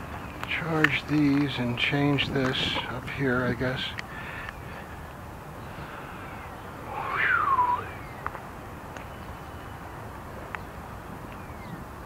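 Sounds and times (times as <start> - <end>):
steady background noise: 0.0 - 12.0
animal cry rising in pitch: 6.9 - 8.0.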